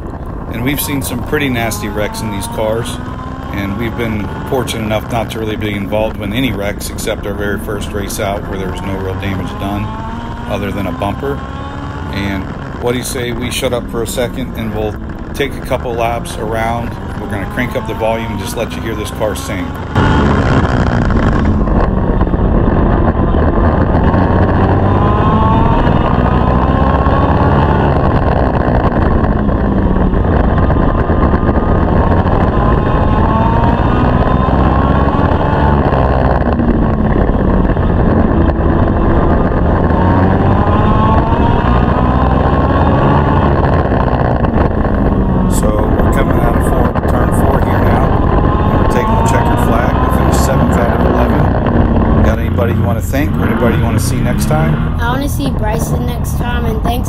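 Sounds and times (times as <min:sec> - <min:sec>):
racing engine revving: 0:00.0 - 0:57.0.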